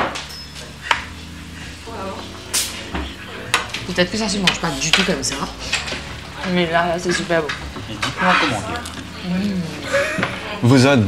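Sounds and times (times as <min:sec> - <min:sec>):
faint low voices: 0:01.3 - 0:11.0
cutlery clinking on metal plates: 0:07.0 - 0:09.0.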